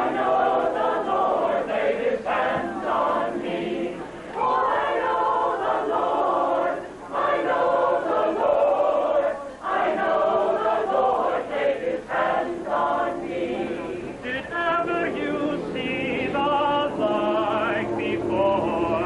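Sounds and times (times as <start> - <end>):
mixed choir singing: 0.0 - 19.0.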